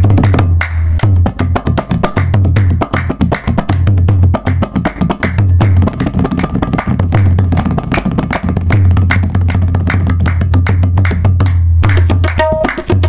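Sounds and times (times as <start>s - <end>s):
hand claps keeping time: 0.0s - 13.0s
tabla playing fast: 0.0s - 13.0s.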